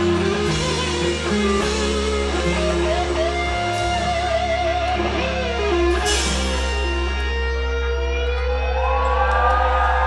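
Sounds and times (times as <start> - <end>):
sustained electric guitar notes: 0.0 - 9.2
rock band playing a power ballad: 0.0 - 9.7.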